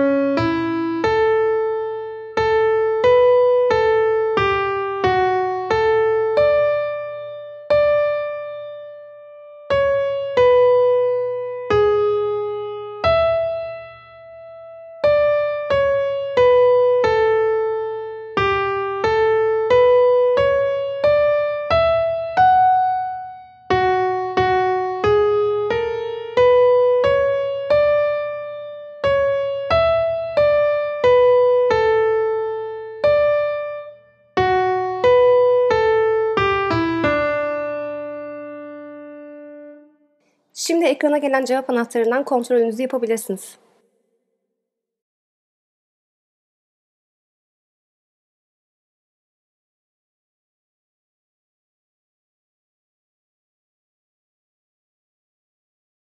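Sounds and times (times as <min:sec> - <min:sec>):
piano melody single notes: 0:00.0 - 0:39.9.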